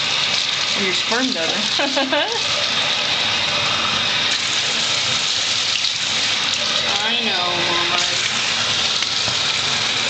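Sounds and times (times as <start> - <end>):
running water rushing: 0.0 - 10.0.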